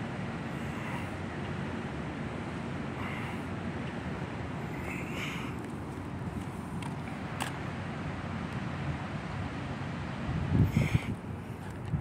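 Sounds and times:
city background rumble: 0.0s - 12.0s.

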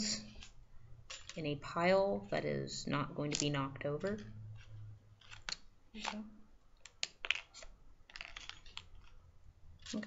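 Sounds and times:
metal pins clicking and clinking: 0.0s - 2.0s, 3.2s - 10.0s.

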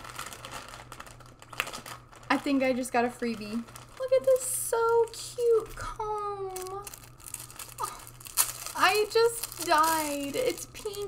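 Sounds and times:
packaging crinkling: 0.0s - 11.0s.

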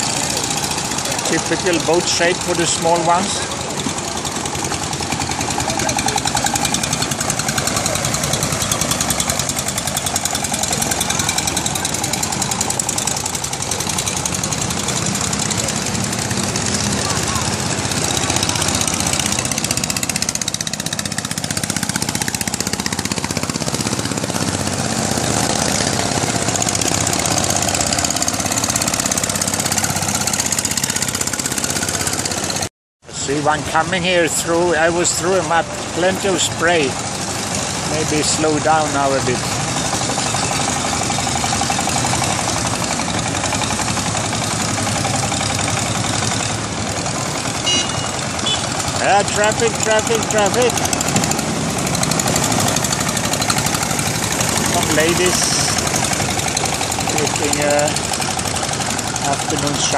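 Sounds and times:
boat engine knocking: 0.0s - 32.7s, 33.6s - 59.9s.

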